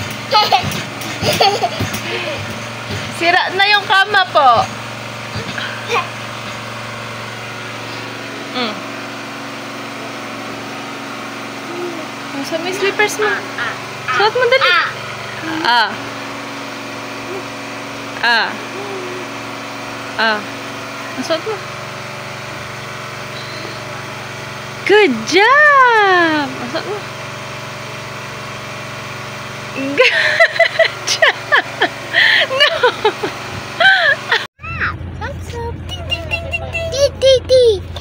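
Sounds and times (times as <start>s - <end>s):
small motor humming: 0.0s - 38.0s.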